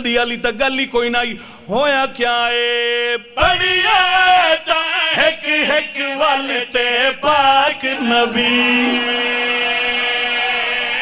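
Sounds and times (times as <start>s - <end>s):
man chanting long note: 7.9s - 11.0s.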